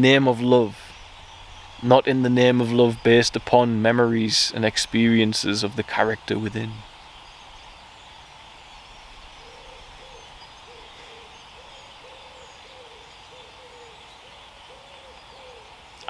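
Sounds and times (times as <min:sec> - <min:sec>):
distant bird hooting: 0:00.0 - 0:16.0
faint woodland ambience: 0:00.0 - 0:16.0.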